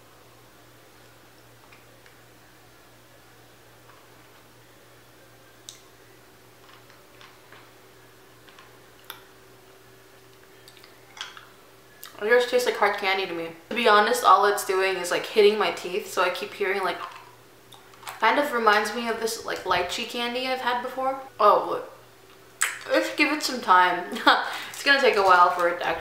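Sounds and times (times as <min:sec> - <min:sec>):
low steady hum: 0:00.0 - 0:26.0
candy clicking against teeth: 0:22.6 - 0:22.9.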